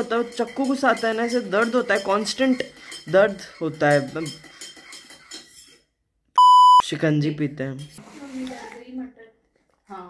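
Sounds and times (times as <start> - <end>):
high electronic censor beep: 6.4 - 6.8.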